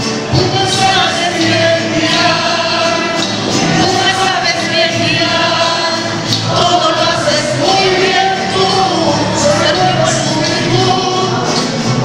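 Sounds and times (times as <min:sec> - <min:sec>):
mariachi band playing: 0:00.0 - 0:12.0
voices singing: 0:00.0 - 0:12.0.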